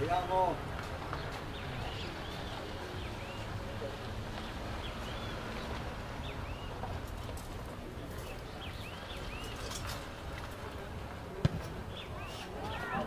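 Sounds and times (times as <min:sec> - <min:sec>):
small birds chirping: 0:00.0 - 0:10.9, 0:11.7 - 0:13.0
ball kicked thud: 0:11.4 - 0:11.7.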